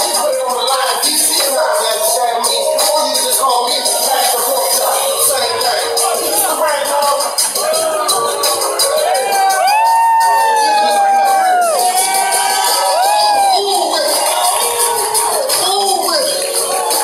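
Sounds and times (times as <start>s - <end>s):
crowd cheering: 0.0s - 17.0s
live music with steady beat: 0.0s - 17.0s.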